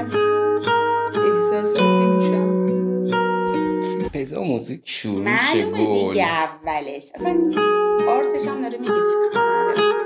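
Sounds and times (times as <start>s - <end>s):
plucked acoustic guitar chords: 0.0s - 4.5s, 5.2s - 10.0s.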